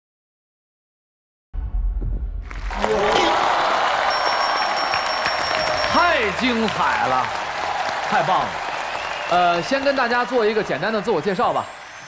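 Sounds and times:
studio audience applauding: 2.5 - 12.0.

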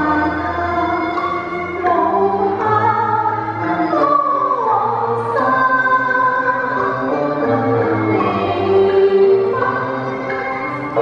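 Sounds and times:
instrumental accompaniment: 0.0 - 11.0
woman singing into microphone: 0.0 - 11.0.

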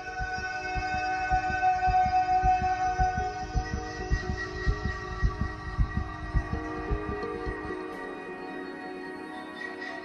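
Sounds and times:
heartbeat thumps: 0.0 - 7.8
ambient music drone: 0.0 - 10.0.

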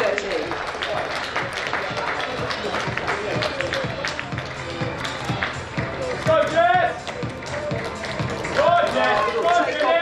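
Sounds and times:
background music: 0.3 - 10.0.

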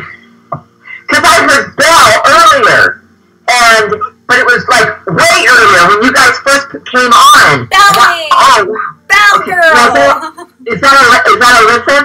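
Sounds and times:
women's high-pitched wordless cries: 9.1 - 10.6.

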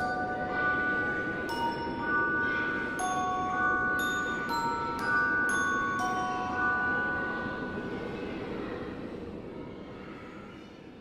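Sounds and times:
chime notes ringing: 0.0 - 8.0
noisy ambient drone: 0.0 - 11.0.

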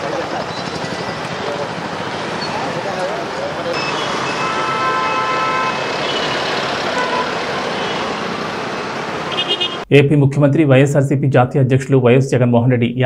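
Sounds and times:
road traffic noise: 0.0 - 9.9
vehicle horn: 3.8 - 8.2, 9.3 - 9.9.

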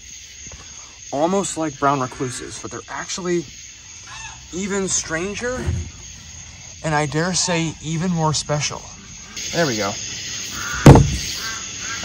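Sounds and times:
low thump: 5.3 - 6.6, 10.9 - 11.3
sharp knock: 10.9 - 11.3.

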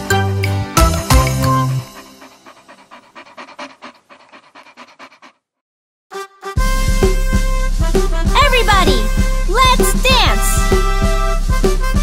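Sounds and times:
cartoon puppy panting: 1.1 - 5.6, 8.4 - 10.7.

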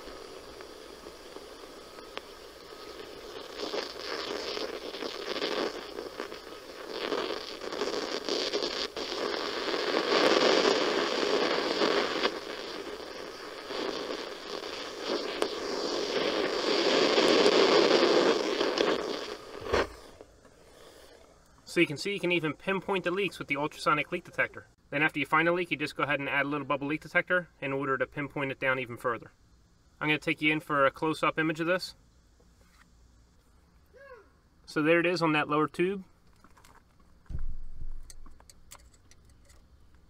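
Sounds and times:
leak detector rushing hiss: 0.0 - 33.9.

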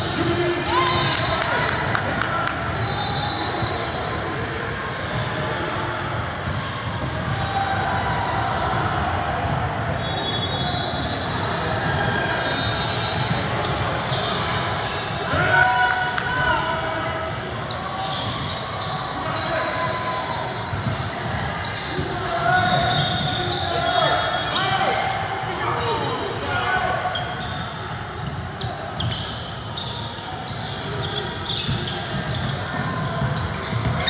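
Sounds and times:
sneaker squeaks: 0.0 - 34.0.

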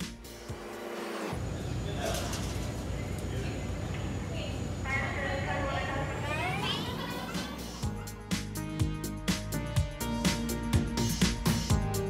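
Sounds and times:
music: 0.0 - 1.4, 6.9 - 12.0
low background hum: 1.4 - 7.5
voice gliding upward in pitch: 6.2 - 7.8.

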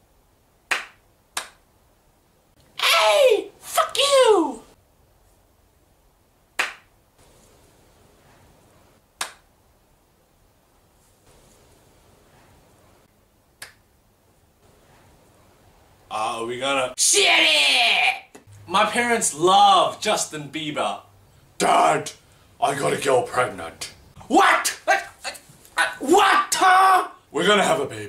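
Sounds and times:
sharp hand claps: 0.7 - 1.6, 6.6 - 6.9, 9.2 - 9.5, 13.6 - 13.8.

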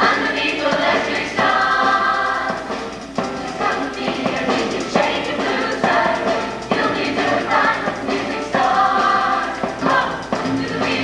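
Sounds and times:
accompaniment with steady beat: 0.0 - 11.0
choir singing in harmony: 0.0 - 11.0.

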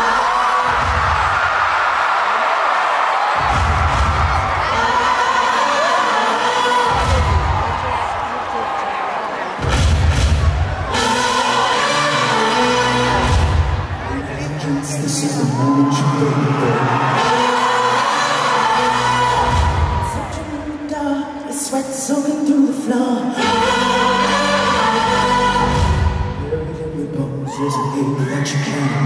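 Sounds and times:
crowd cheering: 0.0 - 20.9
band with heavy low beat: 3.4 - 4.6, 6.9 - 8.2, 9.6 - 11.0
voices singing: 3.5 - 8.6, 10.6 - 29.0.

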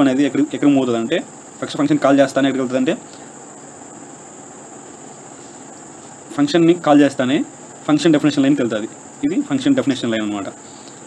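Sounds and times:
faint background hiss: 0.0 - 11.0
steady high-pitched whine: 0.0 - 11.0.

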